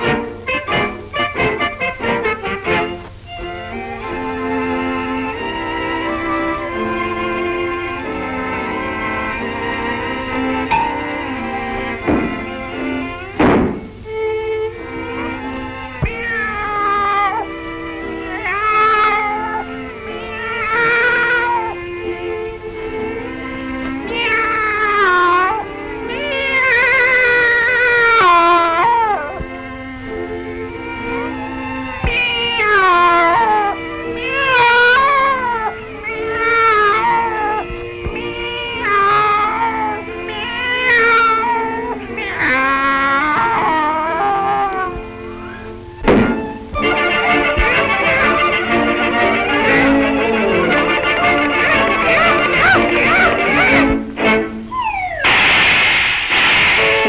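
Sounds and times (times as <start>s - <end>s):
cartoon orchestral music: 0.0s - 57.0s
loud thump: 12.0s - 12.6s, 13.4s - 14.0s, 46.0s - 46.4s, 55.2s - 57.0s
sharp knock: 12.0s - 12.6s, 13.4s - 14.0s, 46.0s - 46.4s, 55.2s - 57.0s
cartoon cat meow: 15.8s - 17.6s, 18.2s - 21.8s, 24.0s - 29.4s, 32.0s - 46.7s, 51.3s - 54.0s.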